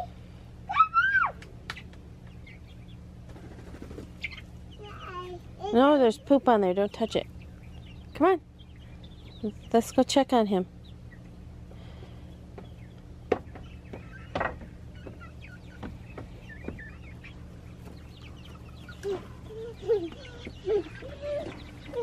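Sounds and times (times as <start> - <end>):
chicks peeping: 0.0 - 22.0
sharp knocks: 13.3 - 15.2.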